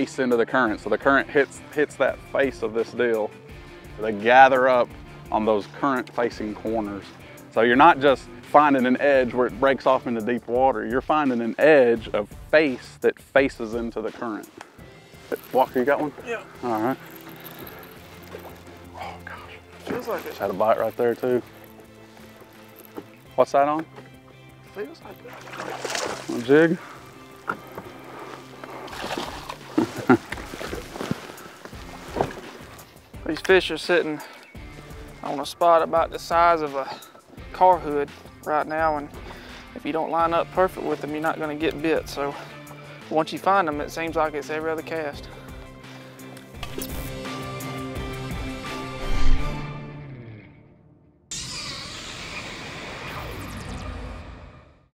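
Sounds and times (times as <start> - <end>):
fish splashing at the surface: 25.2 - 26.6, 28.8 - 31.3
person laughing: 29.7 - 30.4
outro music: 46.6 - 51.6
cinematic whoosh: 48.8 - 50.0
low rumble: 48.9 - 49.8.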